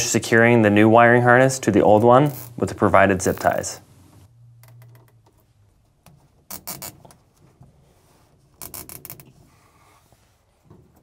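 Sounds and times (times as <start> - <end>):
zip ties ratcheting: 6.5 - 7.1, 8.6 - 9.3.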